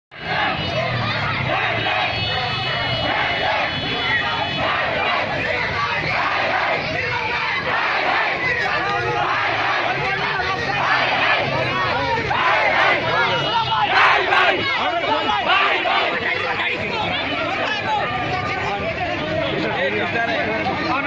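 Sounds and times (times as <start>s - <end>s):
crowd shouting together: 0.1s - 19.7s.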